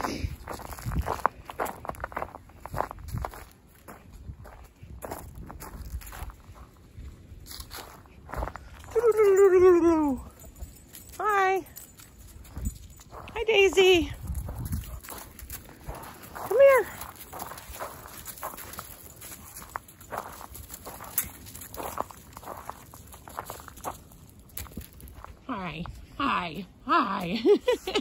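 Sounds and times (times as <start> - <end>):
footsteps on gravel: 0.0 - 26.2.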